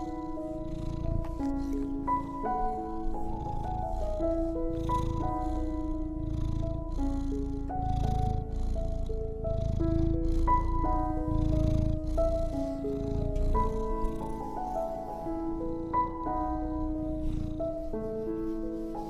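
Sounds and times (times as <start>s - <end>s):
cat purring: 0.0s - 19.0s
soft slow melody: 0.0s - 19.0s.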